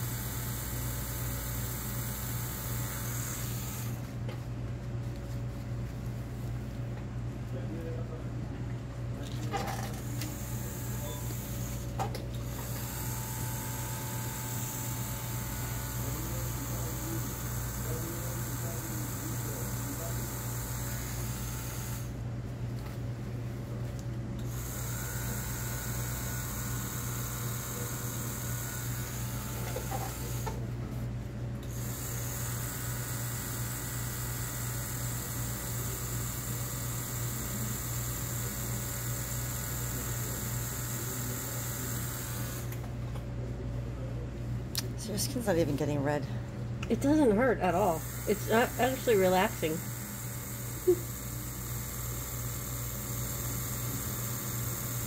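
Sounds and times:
tattoo machine humming: 0:00.0 - 0:04.1, 0:09.3 - 0:22.2, 0:24.4 - 0:30.7, 0:31.6 - 0:42.9, 0:47.7 - 0:55.0.

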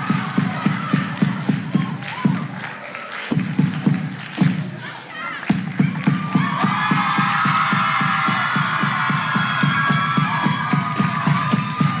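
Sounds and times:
drum beat: 0:00.0 - 0:02.6, 0:03.3 - 0:04.8, 0:05.5 - 0:12.0
hand claps: 0:00.0 - 0:08.0, 0:08.6 - 0:12.0.

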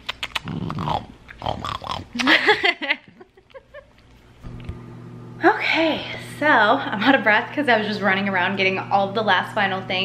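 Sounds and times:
kissing smacks: 0:00.0 - 0:01.4, 0:02.1 - 0:02.4
small dog making throaty noises: 0:00.0 - 0:02.2.

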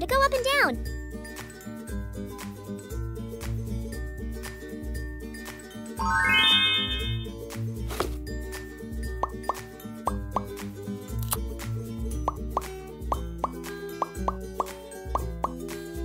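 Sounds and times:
bouncy background music: 0:00.0 - 0:16.0
bubbly pops sweeping upward: 0:13.4 - 0:15.6.

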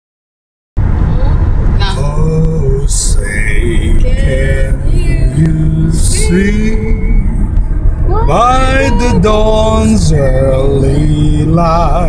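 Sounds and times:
car road and engine rumble: 0:00.8 - 0:12.0.

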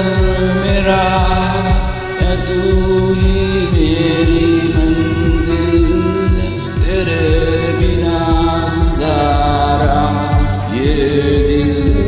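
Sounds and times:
backing track with low beat: 0:00.0 - 0:12.0.

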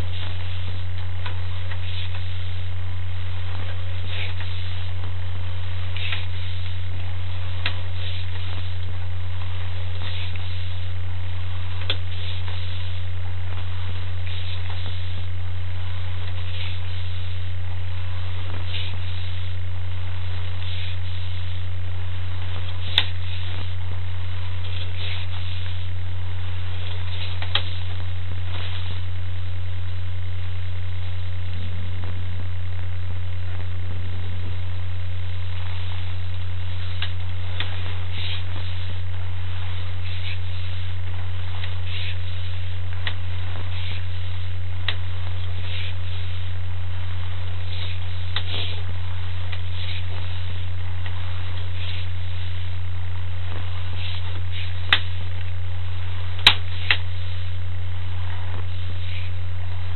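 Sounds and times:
low electrical hum: 0:00.0 - 0:59.9.

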